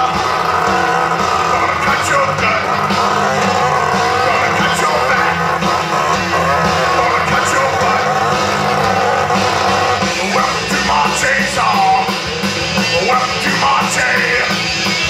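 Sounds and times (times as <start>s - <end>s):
man singing into a microphone: 0.0s - 12.2s, 12.9s - 14.7s
drums: 0.0s - 15.0s
electric guitar: 0.0s - 15.0s.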